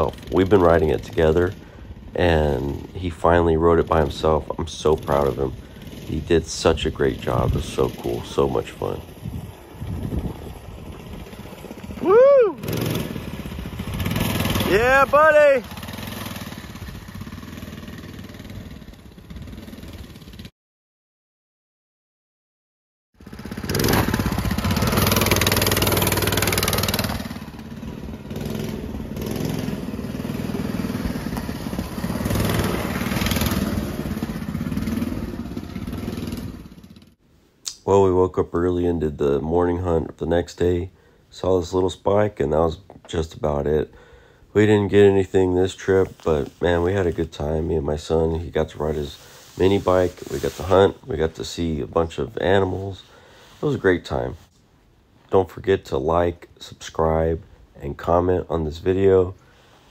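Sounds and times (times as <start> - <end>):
small engine running: 5.0 - 6.3, 10.8 - 20.5, 23.2 - 37.2.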